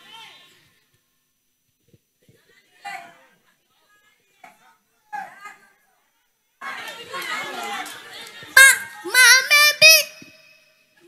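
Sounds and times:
boy singing through a microphone: 8.6s - 10.4s.

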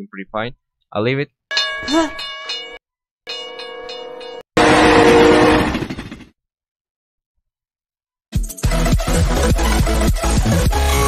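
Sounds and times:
cartoon horn blasts: 4.6s - 5.8s.

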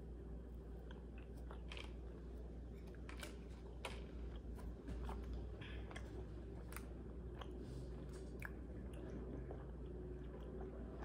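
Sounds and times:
steady low hum: 0.0s - 11.0s
person chewing gummy candy: 0.8s - 11.0s.

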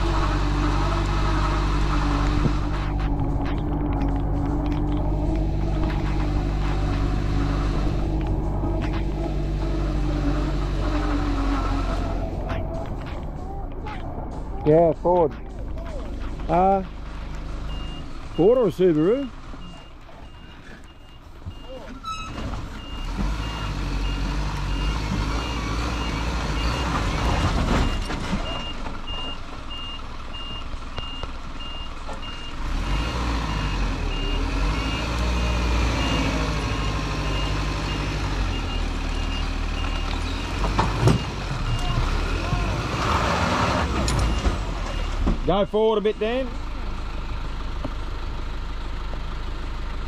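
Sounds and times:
reversing beeper: 0.0s - 13.6s, 27.7s - 45.3s
vehicle engine revving: 0.0s - 20.8s, 22.3s - 28.4s, 32.5s - 45.5s.

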